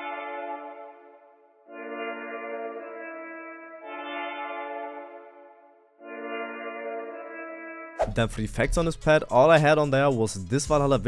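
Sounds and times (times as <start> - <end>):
synth pad sustained chords: 0.0 - 7.9.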